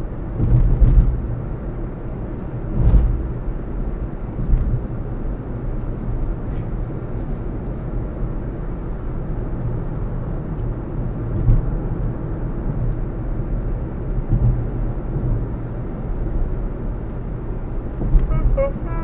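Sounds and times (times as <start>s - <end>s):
car tyres and engine rumble: 0.0s - 19.0s.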